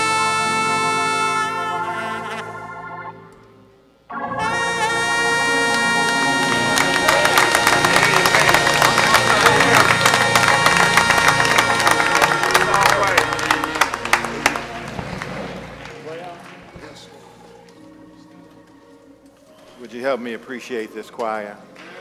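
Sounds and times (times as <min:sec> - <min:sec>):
saxophone note: 0:00.0 - 0:03.4, 0:04.1 - 0:16.0
congregation clapping and cheering: 0:04.2 - 0:17.8.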